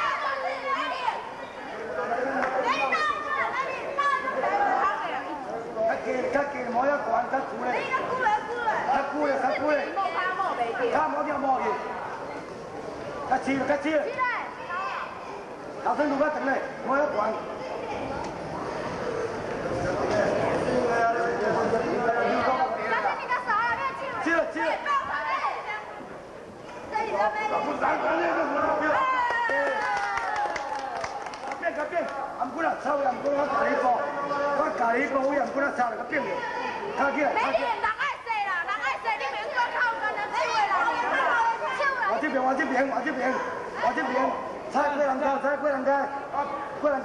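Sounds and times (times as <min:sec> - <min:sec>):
overlapping voices chattering: 0:00.0 - 0:47.0.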